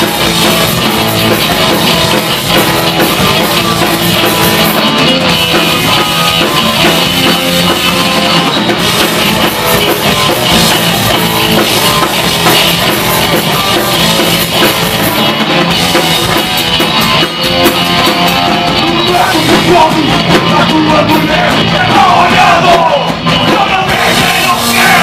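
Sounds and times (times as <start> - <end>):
bass guitar: 0.0 - 25.0
drum kit: 0.0 - 25.0
electric guitar: 0.0 - 25.0.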